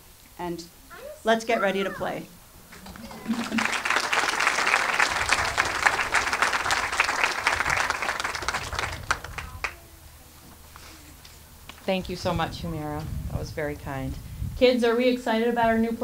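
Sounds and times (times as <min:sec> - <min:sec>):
audience applauding: 0:02.7 - 0:09.8.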